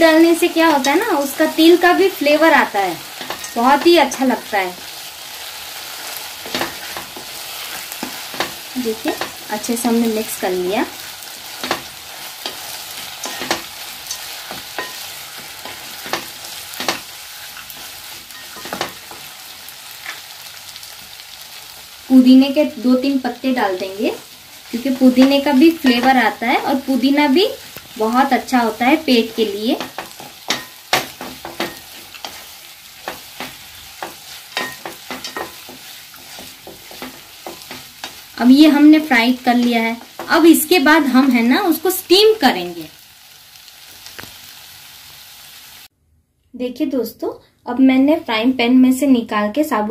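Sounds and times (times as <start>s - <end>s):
food sizzling in oil: 0.0s - 45.9s
spoon clacking against pan: 3.0s - 4.0s, 5.8s - 9.5s, 11.0s - 19.4s, 29.3s - 38.8s
wooden spatula scraping pot: 29.7s - 38.4s.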